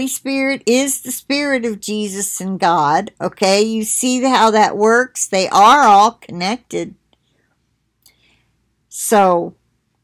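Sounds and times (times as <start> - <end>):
woman talking: 0.0 - 7.0, 8.9 - 9.6
soft breath: 7.2 - 8.7.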